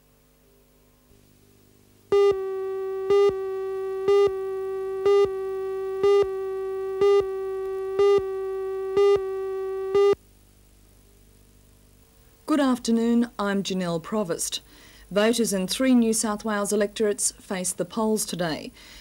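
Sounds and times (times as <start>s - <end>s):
countdown beeps: 2.1s - 10.2s
steady electronic tone: 2.1s - 10.2s.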